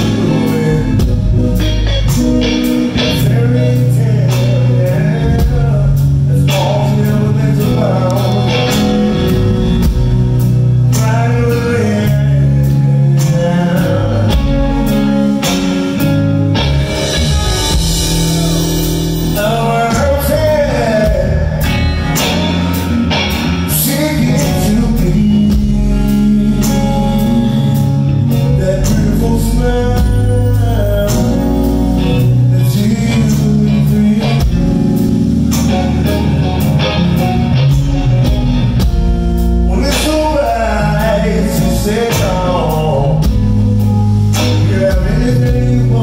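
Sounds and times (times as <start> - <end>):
drum kit: 0.0 - 46.0
electric guitars playing: 0.0 - 46.0
low bass notes: 0.0 - 46.0.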